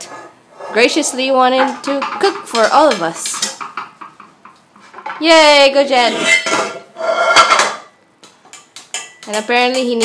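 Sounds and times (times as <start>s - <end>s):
utensil scraping pot: 0.0s - 3.8s, 5.9s - 7.9s
utensil clanging steel pot: 6.0s - 10.0s.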